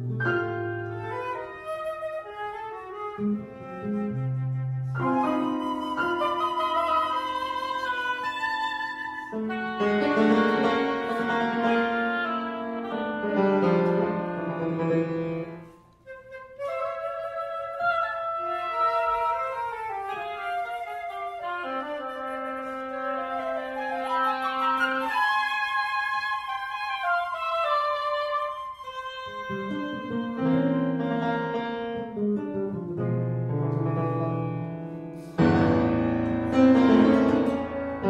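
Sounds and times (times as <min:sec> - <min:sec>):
chamber quartet playing: 0:35.2 - 0:38.0.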